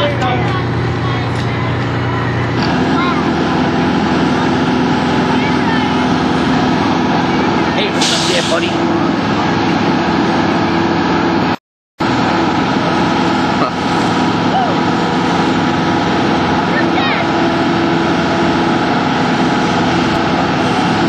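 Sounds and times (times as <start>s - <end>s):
fire engine diesel running: 0.0s - 21.0s
short sharp hiss: 8.0s - 8.7s.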